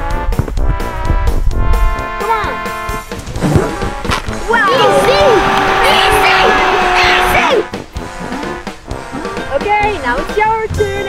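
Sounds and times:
light background music: 0:00.0 - 0:11.0
crowd cheering: 0:04.3 - 0:07.7
person shouting goal: 0:04.5 - 0:07.6.

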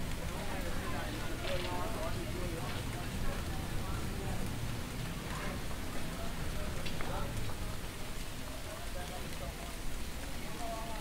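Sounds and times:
steady rain falling: 0:00.0 - 0:11.0.

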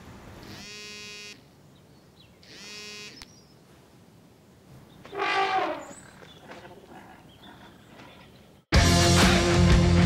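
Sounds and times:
phone vibrating buzz: 0:00.4 - 0:01.4, 0:02.4 - 0:03.2.

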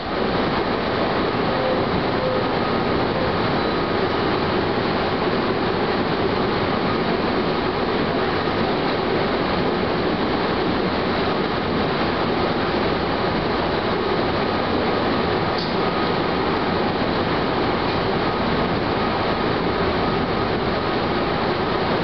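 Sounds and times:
train wheels rolling on rail: 0:00.0 - 0:22.0.

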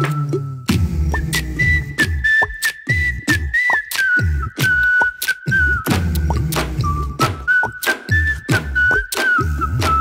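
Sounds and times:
high whistle-like melody: 0:00.0 - 0:10.0
deep bass notes: 0:00.1 - 0:02.3, 0:05.8 - 0:07.5
steady drum beat: 0:05.6 - 0:10.0.

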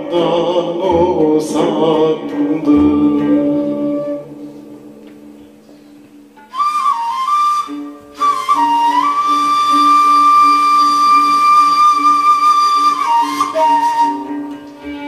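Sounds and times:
reed flute melody: 0:02.6 - 0:15.0.

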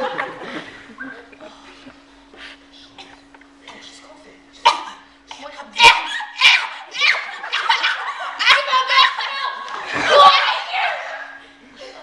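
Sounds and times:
laughter: 0:00.0 - 0:02.0, 0:07.2 - 0:08.4, 0:11.2 - 0:12.0
faint steady hum: 0:00.0 - 0:12.0
girls shrieking and squealing: 0:05.8 - 0:11.4.

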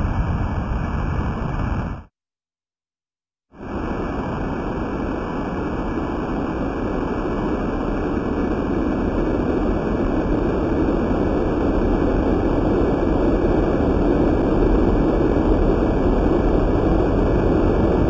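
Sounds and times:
dense noisy rumble: 0:00.0 - 0:02.1, 0:03.6 - 0:18.0.

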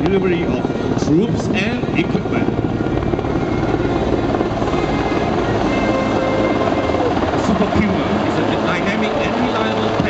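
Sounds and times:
helicopter flying low: 0:00.0 - 0:10.0.

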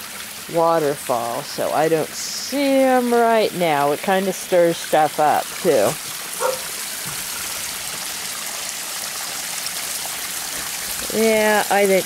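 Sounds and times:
small waterfall splashing into pond: 0:00.0 - 0:12.0.

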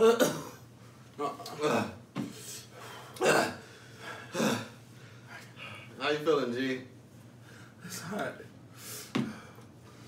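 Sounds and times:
man coughing: 0:00.0 - 0:00.7, 0:03.2 - 0:03.6.

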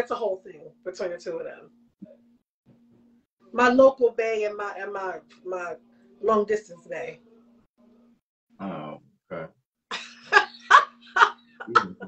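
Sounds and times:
woman laughing: 0:09.9 - 0:12.0.

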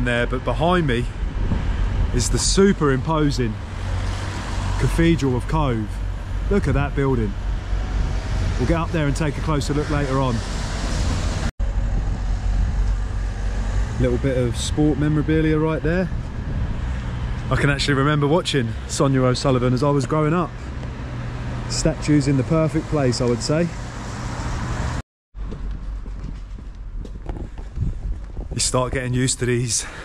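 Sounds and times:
road traffic: 0:00.0 - 0:30.0
street low rumble: 0:00.0 - 0:30.0
low rumble: 0:10.4 - 0:14.0.

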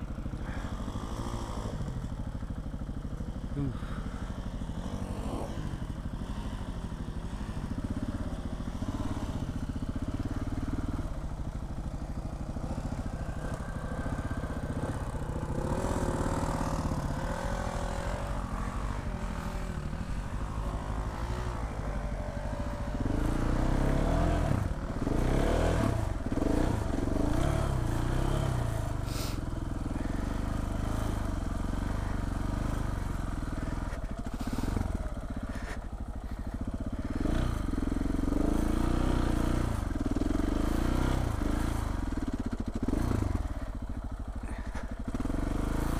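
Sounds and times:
motorcycle engine revving: 0:00.0 - 0:45.9.

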